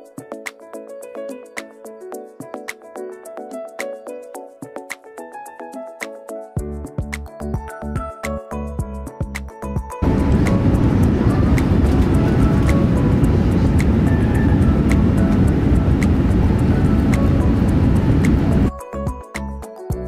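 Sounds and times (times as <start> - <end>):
faint background music: 0.0 - 20.0
airplane engines and wheels rumbling: 10.0 - 18.7.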